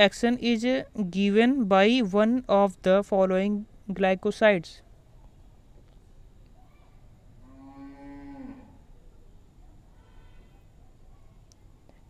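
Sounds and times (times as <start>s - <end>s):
faint drawn-out call: 9.9s - 12.0s.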